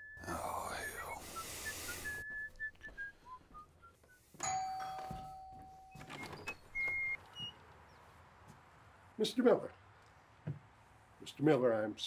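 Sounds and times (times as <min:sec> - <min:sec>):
doorbell ringing: 0:04.4 - 0:06.5.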